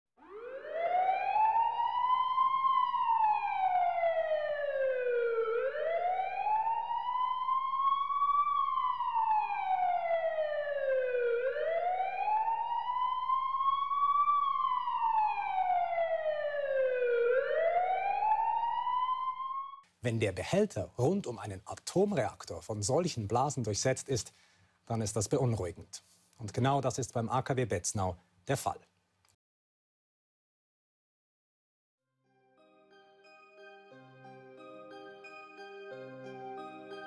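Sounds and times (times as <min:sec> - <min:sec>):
warning siren wailing: 0:00.2 - 0:19.8, 0:33.6 - 0:37.0.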